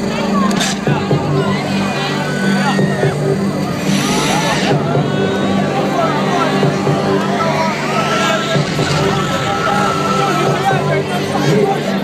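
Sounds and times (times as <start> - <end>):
crowd shouting and singing along: 0.0 - 12.0
loud electronic dance music: 0.0 - 12.0.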